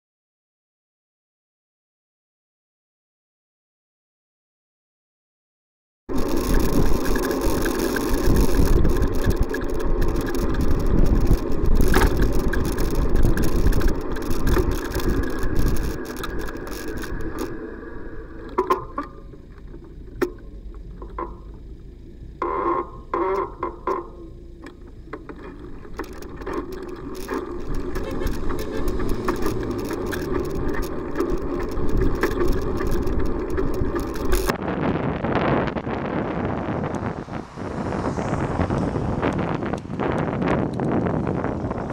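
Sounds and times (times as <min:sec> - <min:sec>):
wind rushing over microphone: 0:06.1 - 0:19.1, 0:25.7 - 0:41.9
car engines and traffic: 0:06.1 - 0:41.9
car horn blasts: 0:28.0 - 0:29.0.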